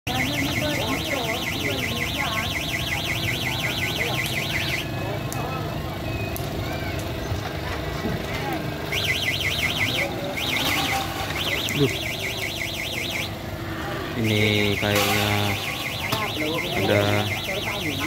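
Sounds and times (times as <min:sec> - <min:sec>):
warbling electronic alarm tone: 0:00.1 - 0:06.4, 0:08.9 - 0:18.0
crowd chatter: 0:00.1 - 0:18.0.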